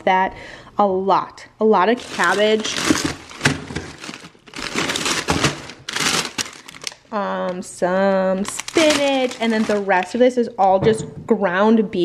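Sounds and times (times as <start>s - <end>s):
plastic bags crinkling: 1.9s - 10.4s.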